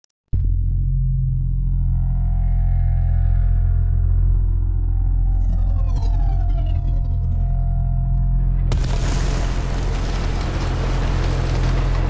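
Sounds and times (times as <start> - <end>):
deep rumbling drone: 0.3 - 12.0
whine falling in pitch: 0.4 - 12.0.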